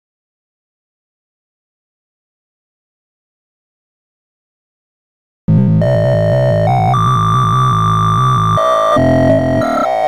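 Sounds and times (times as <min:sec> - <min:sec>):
layered low synthesized tones: 0:05.5 - 0:10.0
high synthesized tone: 0:05.6 - 0:10.0.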